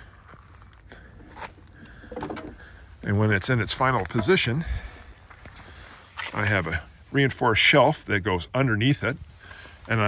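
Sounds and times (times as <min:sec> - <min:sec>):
hand truck wheels crunching: 0:00.0 - 0:06.9.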